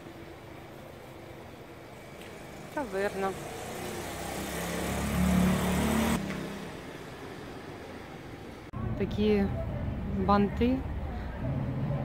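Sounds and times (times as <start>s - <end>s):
car engine passing by: 2.4s - 7.8s.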